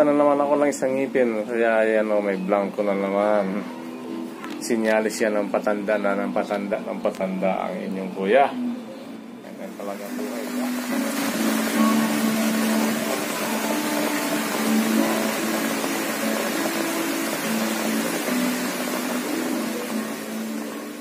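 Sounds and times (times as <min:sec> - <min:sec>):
slow low background music: 0:00.0 - 0:21.0
rain falling on leaves: 0:10.0 - 0:21.0.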